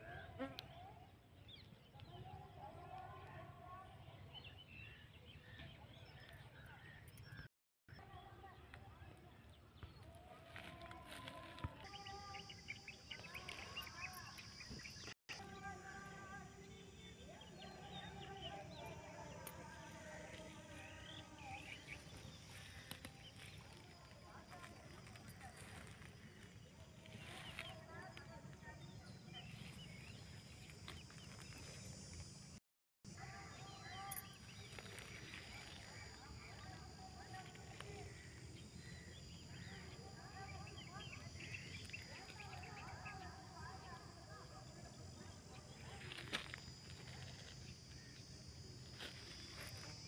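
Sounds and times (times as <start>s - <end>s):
faint distant voices: 0.0s - 32.2s.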